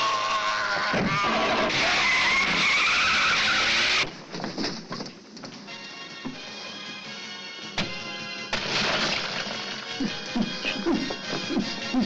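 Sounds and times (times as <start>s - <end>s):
car tyres screeching: 0.7s - 4.2s
wooden handcart clattering over: 4.1s - 5.7s.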